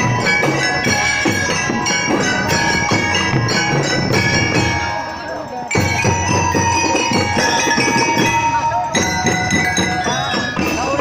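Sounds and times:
bell lyre melody: 0:00.0 - 0:11.0
marching drumbeats: 0:00.0 - 0:11.0.

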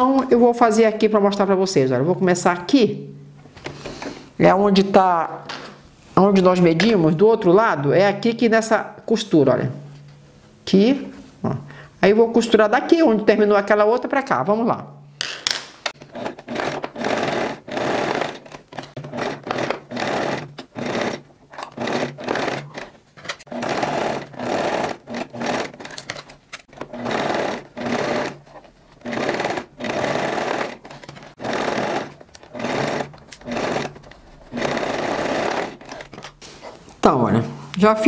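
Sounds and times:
electric sewing machine stitching: 0:16.0 - 0:36.2.

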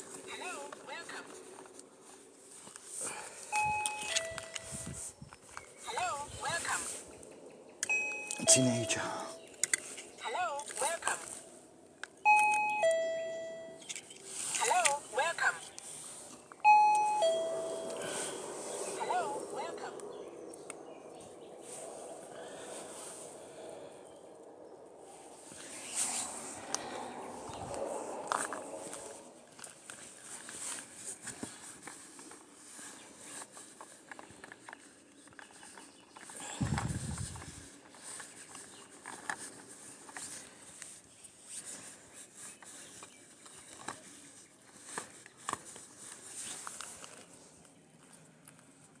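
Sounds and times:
footsteps on gravel: 0:25.8 - 0:31.0
small clicks and rustles: 0:27.7 - 0:49.0.

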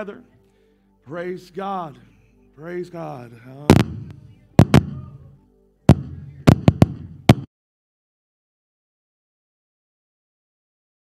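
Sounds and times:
sharp loud pops: 0:03.7 - 0:05.1, 0:05.9 - 0:07.5.

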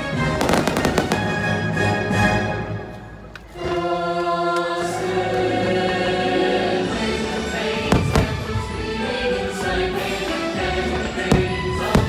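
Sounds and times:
choir singing sustained chord: 0:03.5 - 0:12.0.

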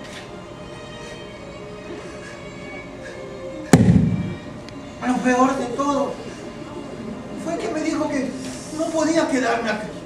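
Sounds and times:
soft background music: 0:00.0 - 0:10.0
heavy boom: 0:03.8 - 0:04.6.

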